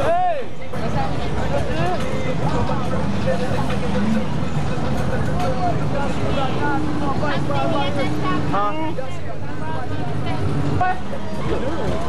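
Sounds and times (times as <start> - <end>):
indistinct voices talking: 0.0 - 12.0
street traffic rumble: 0.0 - 12.0.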